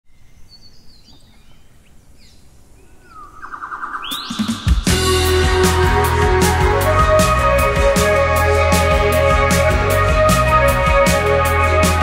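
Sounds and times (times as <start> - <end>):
birds chirping: 0.1 - 7.5.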